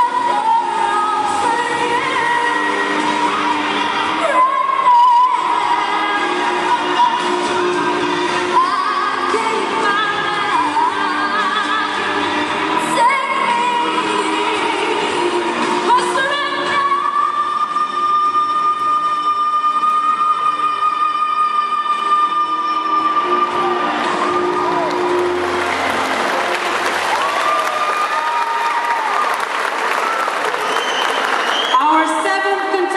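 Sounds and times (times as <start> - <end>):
backing track music: 0.0 - 32.9
crowd voices: 22.8 - 32.9
audience applauding: 23.5 - 32.0.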